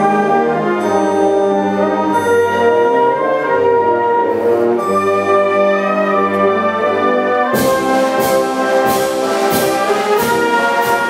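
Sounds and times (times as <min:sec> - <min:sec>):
wind band playing a pasodoble: 0:00.0 - 0:11.0.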